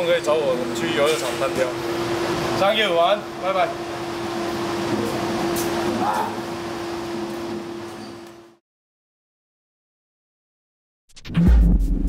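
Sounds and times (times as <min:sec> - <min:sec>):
machine hum: 0:00.0 - 0:08.6.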